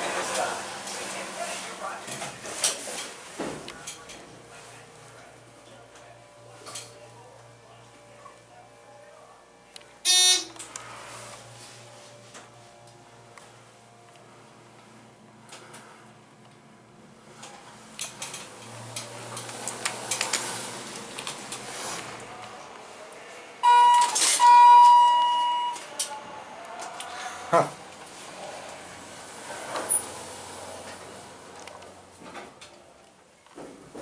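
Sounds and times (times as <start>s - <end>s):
elevator buzzer beep: 10.0s - 10.6s, 23.6s - 25.8s.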